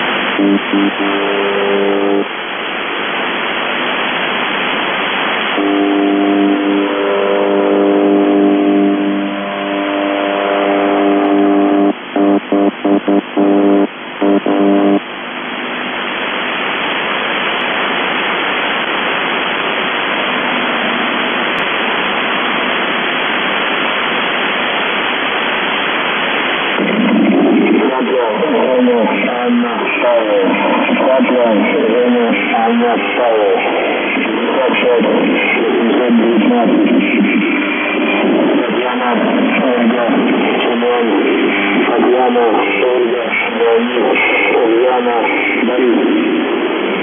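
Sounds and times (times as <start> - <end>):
low buzzing radio tone: 0.0 - 47.0
shortwave radio static: 0.0 - 47.0.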